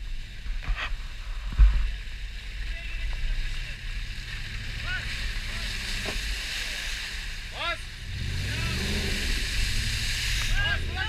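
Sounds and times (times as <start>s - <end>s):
engine pulling hard through mud: 3.4s - 11.0s.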